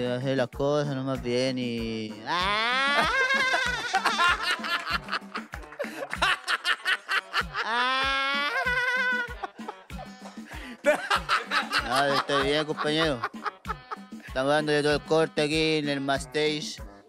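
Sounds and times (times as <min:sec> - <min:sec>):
background music with steady beat: 0:00.0 - 0:17.0
high-pitched wavering laugh: 0:02.3 - 0:14.1
men laughing: 0:02.3 - 0:14.4.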